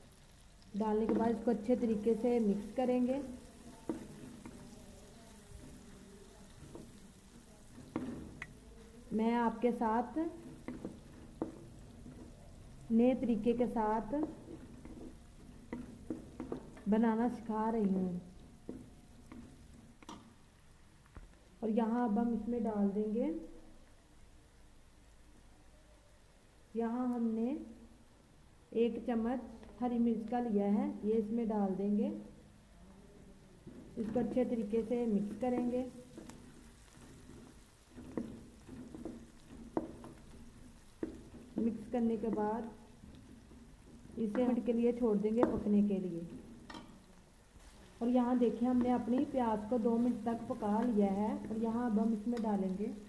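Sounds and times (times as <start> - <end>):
onions sizzling in a pot: 0.0 - 25.5, 26.1 - 53.0
spatula knocking and scraping pan: 0.9 - 20.4, 33.6 - 53.0.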